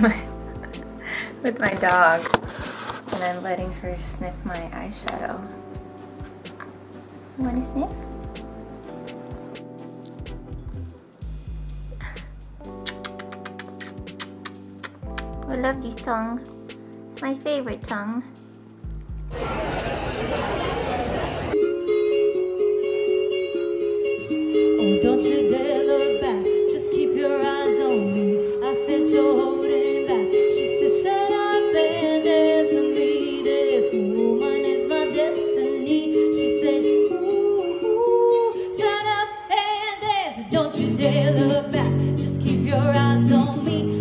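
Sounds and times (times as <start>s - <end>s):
electric guitar notes and chords: 0.0s - 17.7s, 18.3s - 39.3s, 40.5s - 44.0s
electric guitar: 20.4s - 39.3s
woman singing: 24.6s - 44.0s.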